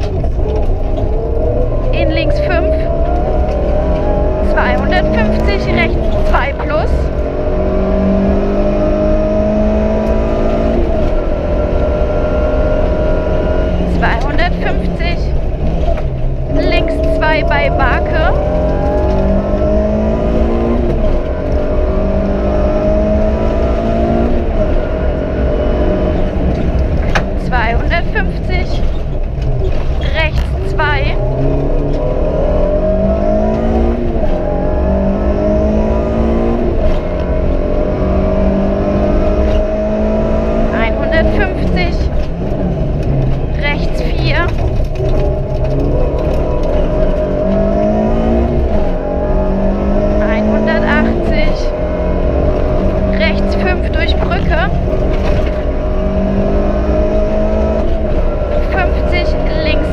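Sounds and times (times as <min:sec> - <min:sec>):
car engine revving through gears: 0:00.0 - 0:59.9.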